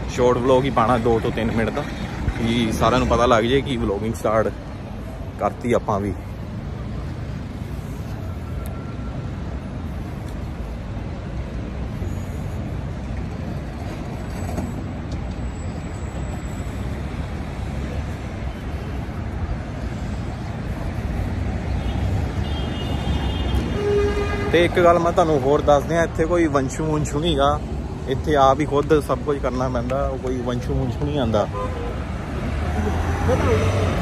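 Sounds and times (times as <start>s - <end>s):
traffic rumble: 0.0s - 34.0s.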